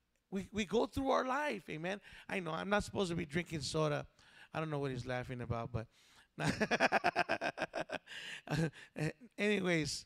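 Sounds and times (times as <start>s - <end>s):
man laughing: 6.4s - 9.2s.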